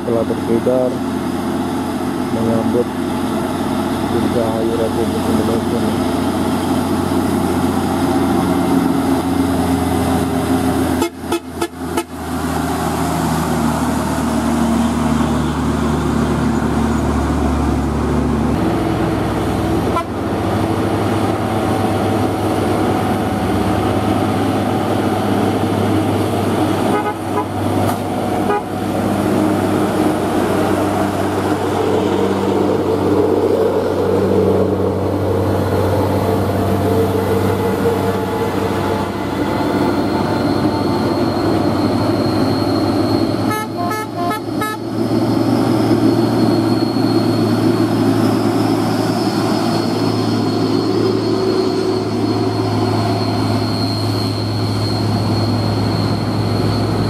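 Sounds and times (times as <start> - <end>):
heavy diesel trucks climbing: 0.0 - 57.0
truck horn: 10.9 - 12.3, 19.8 - 20.3, 26.8 - 28.9, 43.4 - 45.0.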